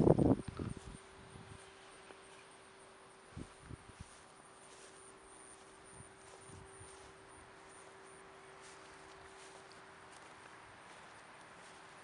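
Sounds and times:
faint steady hum: 0.0 - 12.0
soft footsteps on grass: 0.0 - 12.0.

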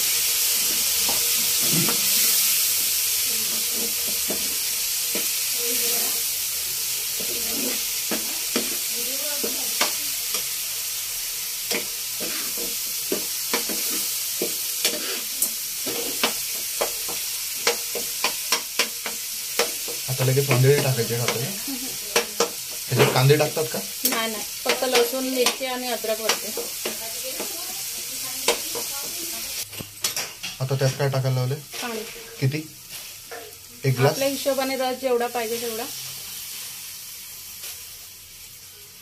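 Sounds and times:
food sizzling in hot oil: 0.0 - 39.0.

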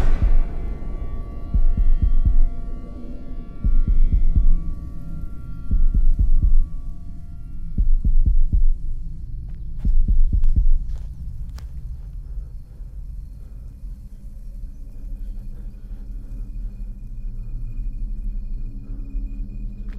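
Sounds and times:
low throbbing soundtrack pulse: 0.0 - 19.9.

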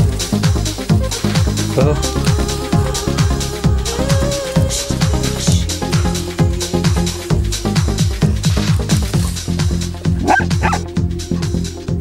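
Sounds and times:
electronic dance music: 0.0 - 12.0
young dog yipping: 10.2 - 10.8.

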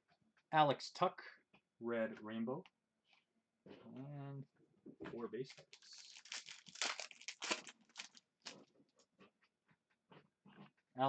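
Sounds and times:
cards rustling: 5.5 - 8.6
foil wrapper crinkling: 5.5 - 8.6.

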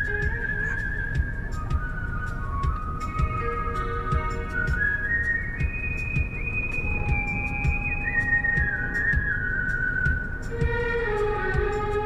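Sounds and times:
car cabin rumble: 0.0 - 12.0
slow melody of sliding high notes: 0.0 - 12.0.

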